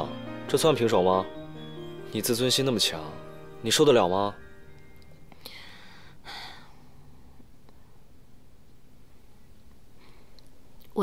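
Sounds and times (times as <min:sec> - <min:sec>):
woman breathing softly: 0:05.3 - 0:07.5, 0:10.0 - 0:10.5.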